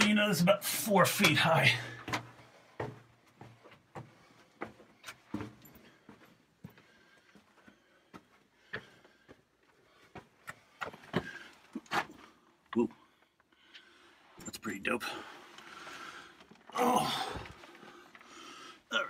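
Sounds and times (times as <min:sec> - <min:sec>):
footsteps on rocky floor: 0:01.2 - 0:09.4.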